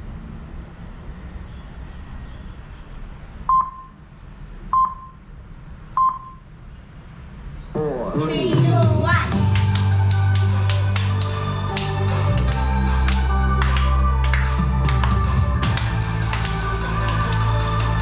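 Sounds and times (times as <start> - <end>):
low steady hum: 3.1 - 18.0
short electronic beeps: 3.5 - 4.0, 4.7 - 5.2, 6.0 - 6.4.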